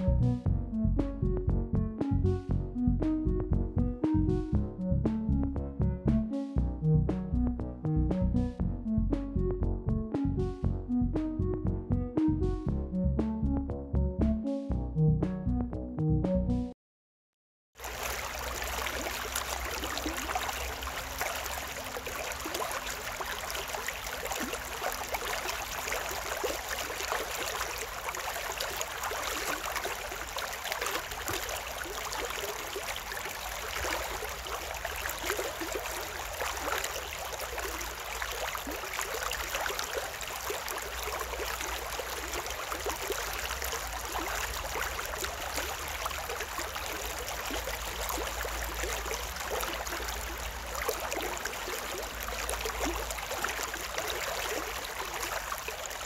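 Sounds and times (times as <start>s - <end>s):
stream running over stones: 17.8s - 56.0s.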